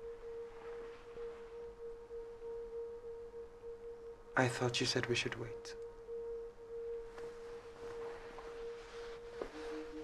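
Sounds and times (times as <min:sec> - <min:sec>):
soft sustained synth drone: 0:00.0 - 0:10.0.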